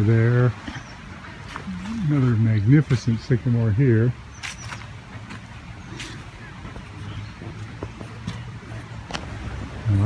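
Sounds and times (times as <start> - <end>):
distant road traffic rumble: 0.0 - 10.0.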